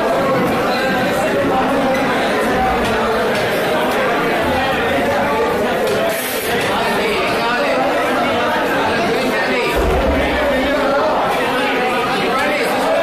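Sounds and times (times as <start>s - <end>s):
babble of overlapping voices: 0.0s - 13.0s
low bump: 9.7s - 12.1s.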